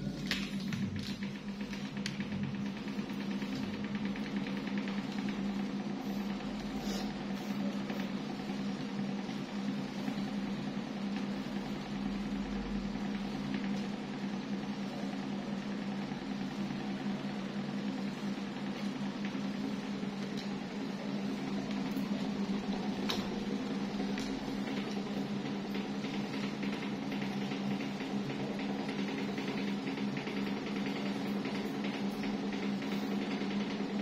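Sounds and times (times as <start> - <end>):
electric fan motor hum: 0.0 - 34.0.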